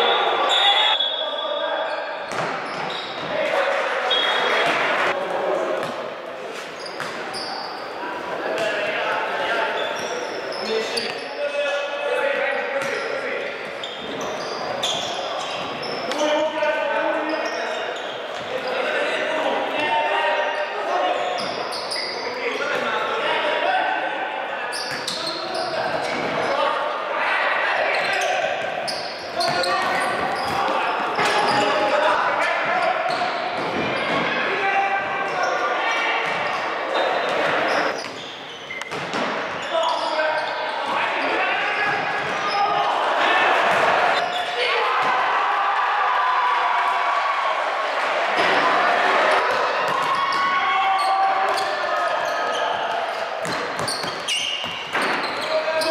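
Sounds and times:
players and spectators voices: 0.0s - 55.9s.

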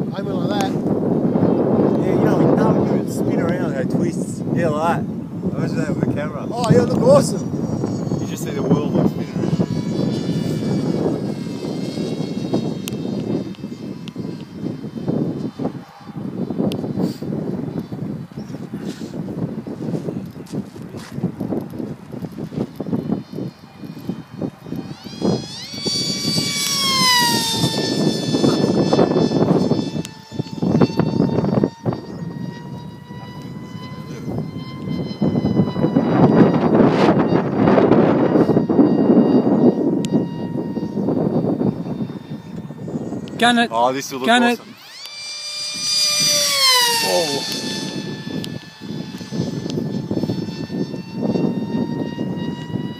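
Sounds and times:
model jet motor whining: 0.0s - 52.9s
wind rumble on microphone: 0.0s - 52.9s.

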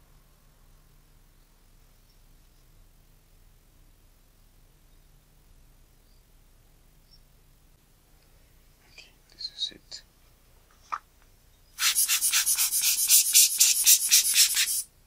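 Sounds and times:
rapid rubbing or brushing: 11.8s - 14.9s.

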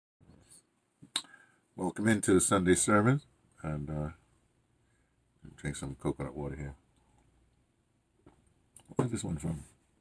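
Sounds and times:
man speaking: 1.8s - 4.2s, 5.4s - 6.8s, 8.8s - 9.8s.

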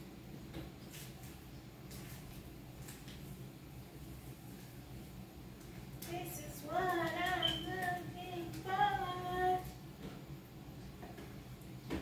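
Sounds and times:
woman singing long notes: 6.1s - 9.7s.

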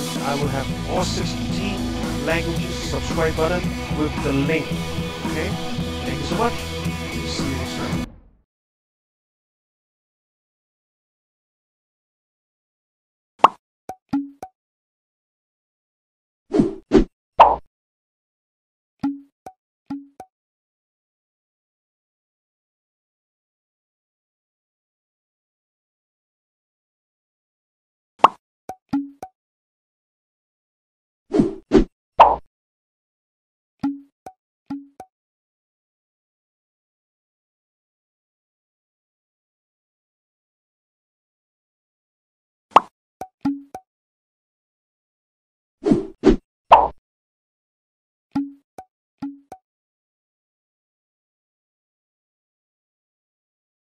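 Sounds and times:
cartoon pop: 13.4s - 13.6s, 17.4s - 17.7s, 28.2s - 28.4s, 32.2s - 32.5s, 42.7s - 42.9s, 46.7s - 47.0s
cartoon pop sound effects: 13.4s - 14.5s, 17.4s - 17.7s, 28.2s - 29.3s, 32.2s - 32.5s, 42.7s - 43.8s, 46.7s - 47.0s.

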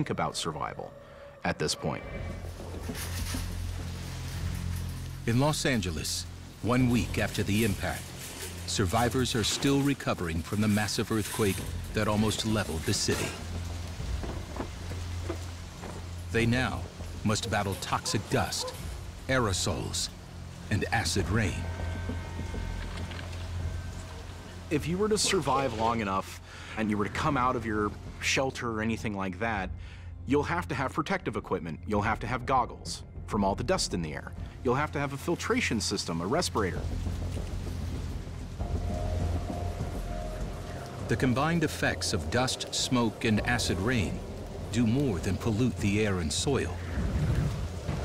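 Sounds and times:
held musical tone: 0.0s - 28.8s, 34.0s - 47.0s
dark low drone: 0.0s - 48.0s
rain-like hiss: 2.4s - 29.0s, 34.2s - 48.0s
deep thunder-like rumble: 36.5s - 48.0s.

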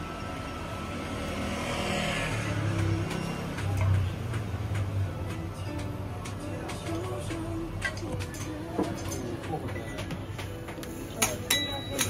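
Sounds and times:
motor vehicle passing: 0.4s - 5.2s.

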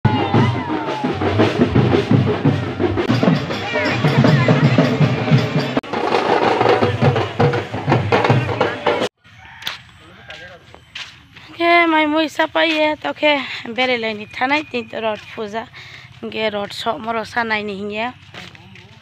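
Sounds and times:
drum band playing: 0.0s - 9.2s
crowd voices: 0.0s - 10.4s
woman speaking: 11.5s - 18.8s.

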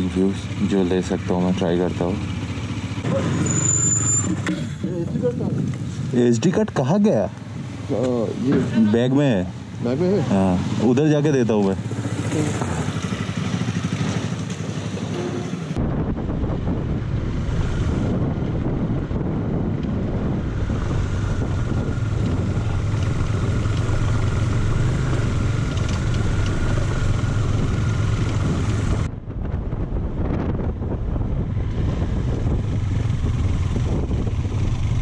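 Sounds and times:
motorcycle engine running: 0.0s - 6.3s, 9.7s - 35.0s
wind buffeting microphone: 4.8s - 6.6s, 15.7s - 35.0s.

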